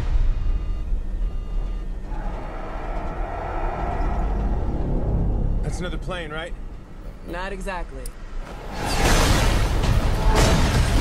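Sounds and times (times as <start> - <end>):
deep rumble: 0.0 - 7.3.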